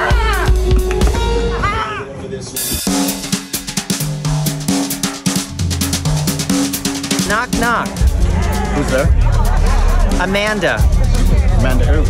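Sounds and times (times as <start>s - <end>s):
music with drums and bass: 0.0s - 1.5s, 2.6s - 12.0s.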